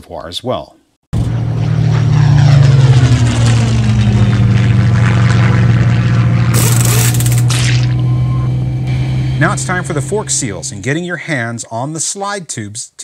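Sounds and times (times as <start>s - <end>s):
motorcycle engine running: 1.2s - 11.0s
propeller plane flying past: 1.2s - 11.0s.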